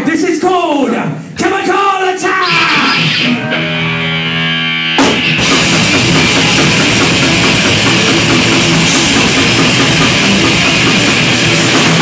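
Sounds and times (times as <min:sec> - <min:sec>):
metal band playing loud: 0:02.2 - 0:12.0
distorted electric guitar note: 0:02.4 - 0:12.0.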